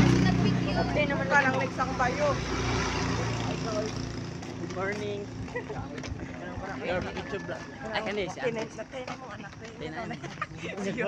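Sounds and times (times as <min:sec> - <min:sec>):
people talking: 0:00.0 - 0:04.0, 0:04.6 - 0:11.0
vehicle engine humming: 0:00.0 - 0:10.0.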